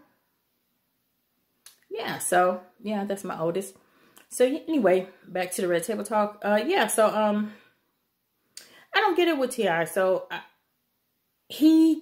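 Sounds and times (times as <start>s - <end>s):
woman speaking: 1.8s - 7.6s, 8.9s - 10.5s, 11.5s - 12.0s.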